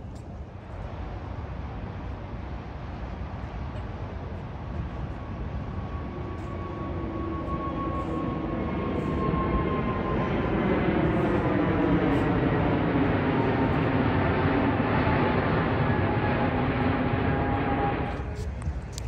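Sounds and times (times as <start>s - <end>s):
jet airliner engine roar: 0.0s - 19.0s
whining engine tones: 5.7s - 18.8s.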